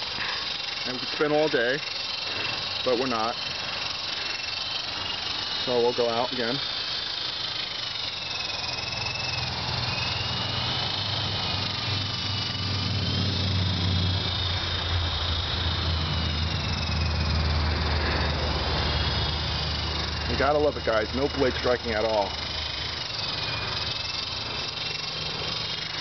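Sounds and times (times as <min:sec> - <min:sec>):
low hum: 0:00.0 - 0:26.0
toy helicopter motor whine: 0:00.0 - 0:26.0.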